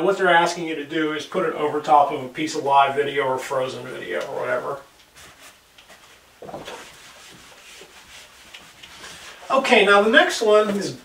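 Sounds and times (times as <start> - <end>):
eraser wiping whiteboard: 5.1 - 10.9.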